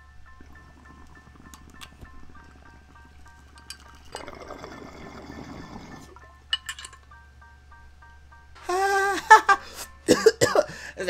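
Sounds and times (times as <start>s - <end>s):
water bubbling in a bong: 0.3s - 3.2s, 4.1s - 6.2s.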